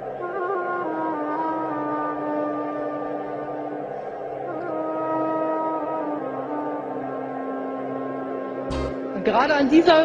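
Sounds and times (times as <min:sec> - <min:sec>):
slow sustained background music: 0:00.0 - 0:10.0.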